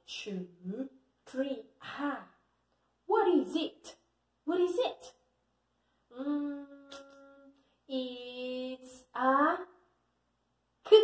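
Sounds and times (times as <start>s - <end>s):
woman humming: 6.1s - 7.6s.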